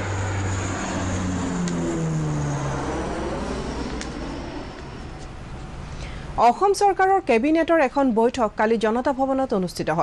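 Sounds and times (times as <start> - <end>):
propeller aircraft engine drone: 0.0 - 7.4.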